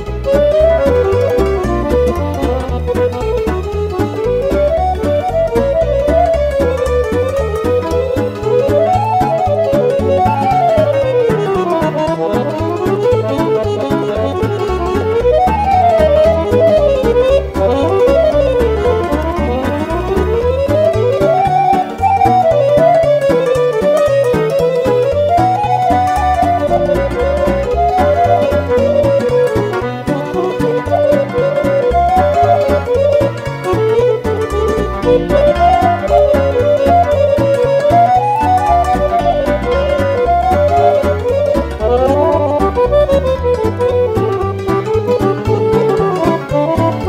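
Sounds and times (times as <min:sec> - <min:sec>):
accordion playing fast melody: 0:00.0 - 0:47.0
backing orchestration with pulsing bass: 0:00.0 - 0:47.0.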